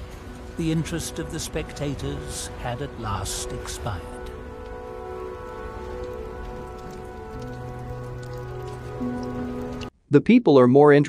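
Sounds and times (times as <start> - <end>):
low sustained film music: 0.0 - 9.9
rain-like hiss: 0.0 - 9.9.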